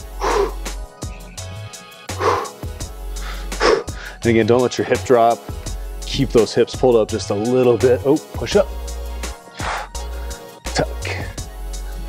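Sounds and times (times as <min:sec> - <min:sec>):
man exhaling forcefully: 0:00.0 - 0:00.7, 0:02.2 - 0:04.2, 0:09.6 - 0:10.0
background music with bass line: 0:00.0 - 0:12.0.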